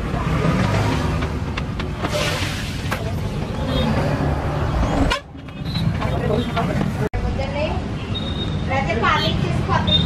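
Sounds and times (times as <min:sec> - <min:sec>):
street traffic: 0:00.0 - 0:10.0.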